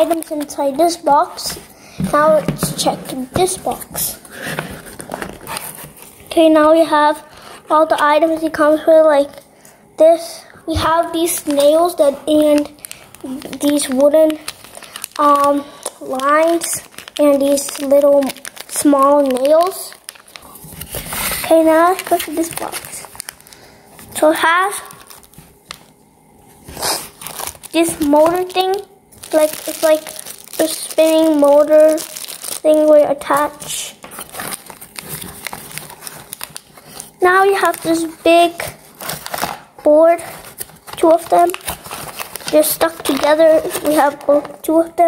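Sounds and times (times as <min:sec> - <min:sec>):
plastic bags crinkling: 0:00.0 - 0:06.5, 0:10.9 - 0:44.8.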